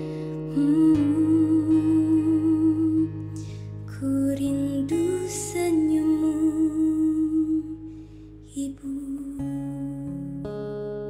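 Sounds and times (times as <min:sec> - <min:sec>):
acoustic guitar ballad: 0:00.0 - 0:11.0.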